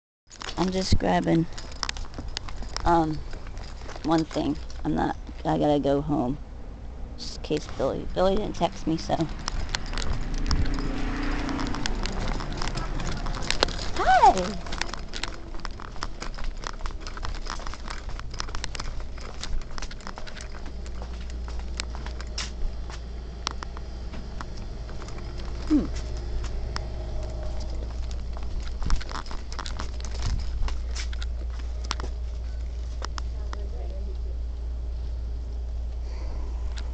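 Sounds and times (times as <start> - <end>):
footsteps: 0.3 - 5.7, 7.2 - 34.3
steady low hum: 0.4 - 36.9.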